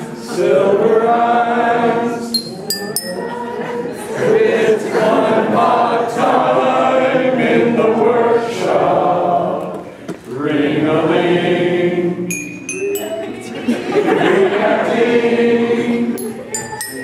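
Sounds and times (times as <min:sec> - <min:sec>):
men singing together: 0:00.0 - 0:12.3, 0:13.5 - 0:16.3
brief high ringing: 0:02.4 - 0:03.4.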